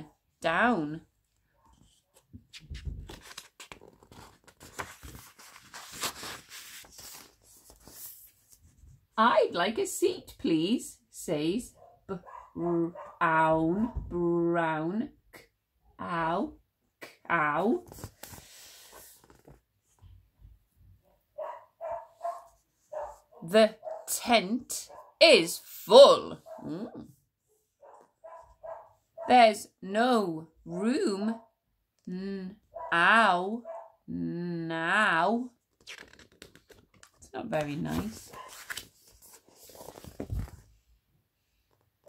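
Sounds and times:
book pages rustling: 1.7 - 9.0, 17.8 - 20.1, 35.7 - 40.8
dogs barking in background: 11.8 - 13.2, 21.4 - 24.1, 27.8 - 29.3, 33.6 - 34.0.

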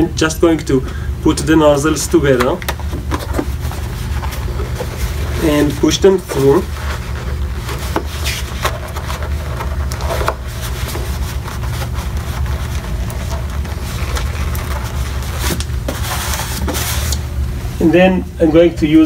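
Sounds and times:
low background hum: 0.0 - 19.0.

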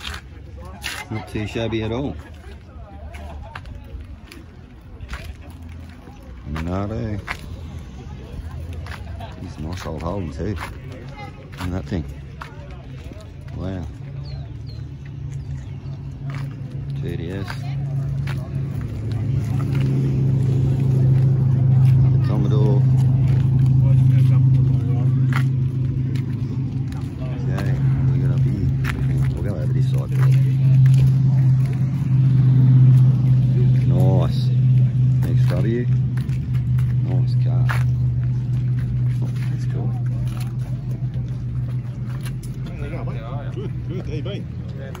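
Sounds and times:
people talking: 0.0 - 45.0
vehicle engine idling: 0.0 - 45.0.

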